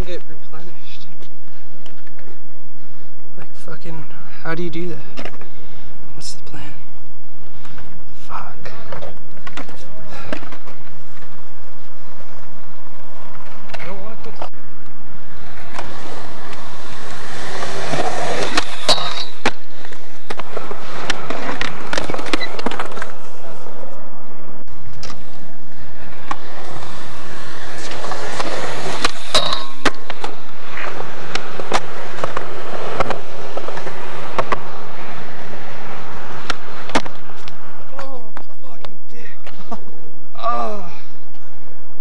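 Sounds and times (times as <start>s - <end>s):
skateboard wheels rolling on concrete: 0.0s - 42.0s.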